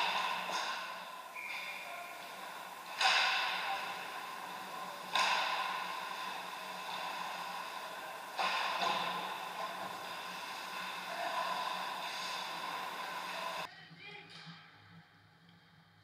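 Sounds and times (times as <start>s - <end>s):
sharp knocks: 0.0s - 13.2s
skating noise: 0.0s - 13.7s
steady low hum: 0.0s - 13.7s.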